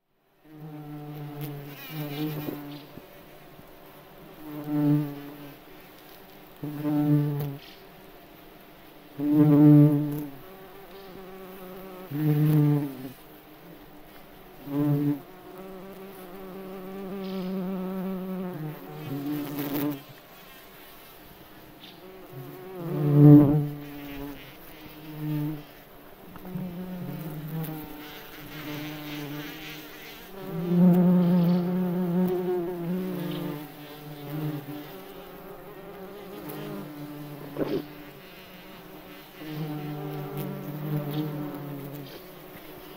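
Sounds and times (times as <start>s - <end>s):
beetle buzzing in flight: 21.8s - 42.9s.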